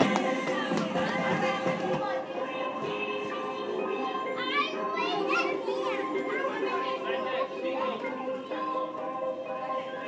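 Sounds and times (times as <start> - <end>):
children calling and squealing: 2.1 - 10.0.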